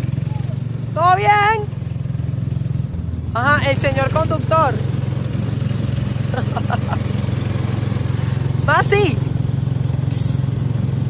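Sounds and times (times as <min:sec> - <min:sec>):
go-kart engine running: 0:00.0 - 0:11.0.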